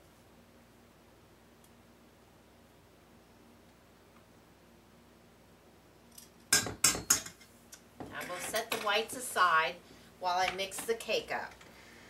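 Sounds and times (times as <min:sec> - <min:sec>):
utensils clanking on metal bowl: 0:08.2 - 0:09.0.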